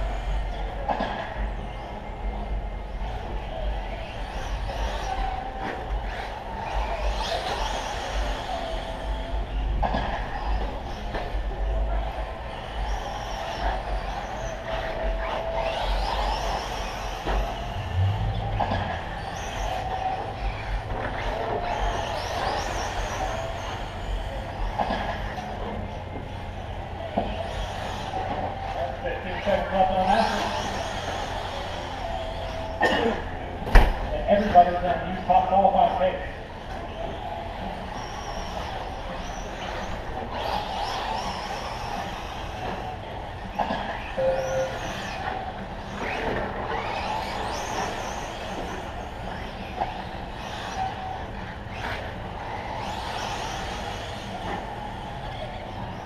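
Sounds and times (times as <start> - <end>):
indistinct voices: 0.0 - 56.0
radio-controlled trucks running on dirt: 0.0 - 56.0.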